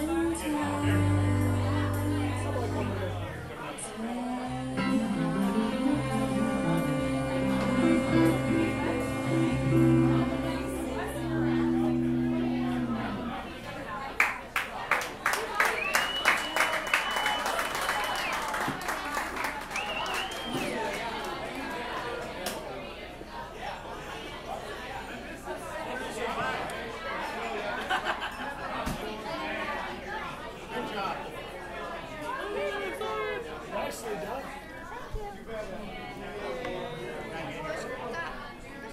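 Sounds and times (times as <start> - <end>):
overlapping chatter of voices: 0.0 - 38.9
small audience applauding: 14.2 - 22.6
long high whistle: 15.7 - 18.4.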